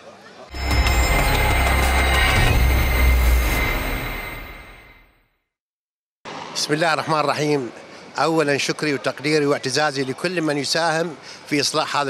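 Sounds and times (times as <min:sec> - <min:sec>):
loud rushing whoosh: 0:00.5 - 0:05.1.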